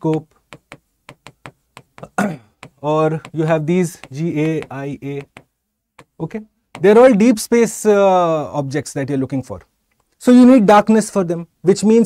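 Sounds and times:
stylus tapping on a screen: 0.0s - 7.1s.

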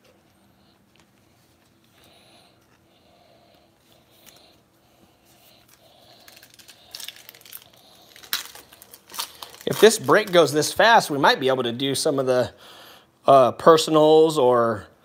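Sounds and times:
foil pack crinkling: 5.3s - 11.1s
wrapper ripping: 5.6s - 10.8s.

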